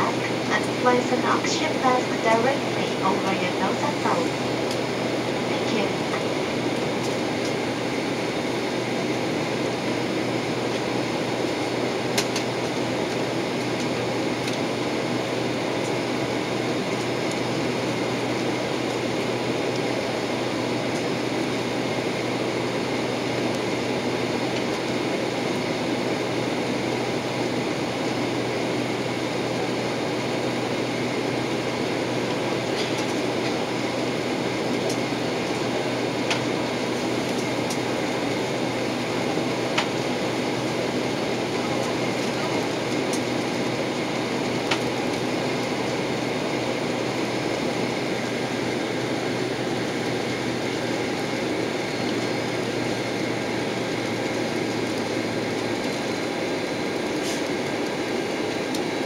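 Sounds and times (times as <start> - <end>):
jet cabin engine rumble: 0.0 - 59.0.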